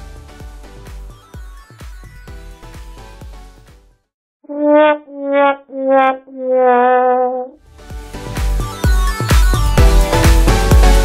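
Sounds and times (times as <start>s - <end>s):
brass-like held notes: 4.5s - 7.6s.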